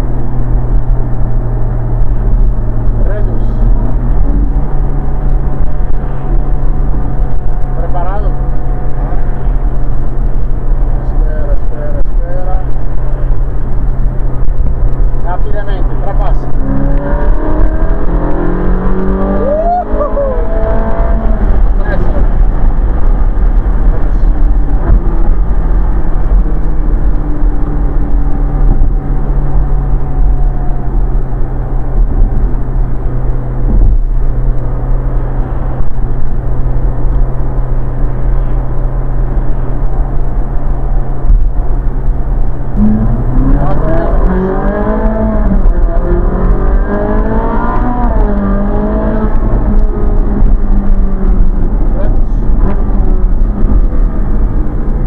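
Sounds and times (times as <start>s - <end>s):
car engine cruising: 0.0s - 55.0s
wind rush: 0.0s - 55.0s.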